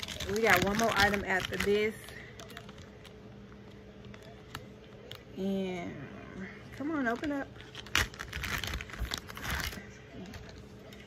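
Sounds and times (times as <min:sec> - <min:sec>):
plastic bag snapping open: 0:00.0 - 0:03.2, 0:07.1 - 0:09.8
plastic bag crinkling: 0:00.0 - 0:05.3, 0:06.7 - 0:11.0.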